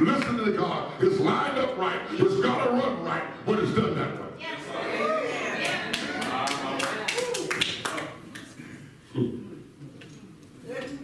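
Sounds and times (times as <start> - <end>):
congregation voices responding: 0.0 - 11.0
hand claps: 5.6 - 8.6.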